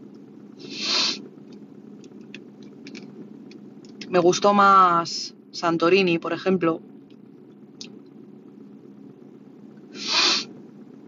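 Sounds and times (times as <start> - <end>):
low hum in car cabin: 0.0 - 11.0
breathy puff of air: 0.6 - 1.2, 9.9 - 10.5.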